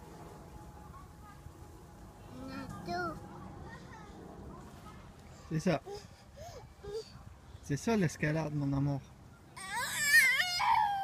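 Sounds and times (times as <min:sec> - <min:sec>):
girl whining cry: 0:09.6 - 0:11.0.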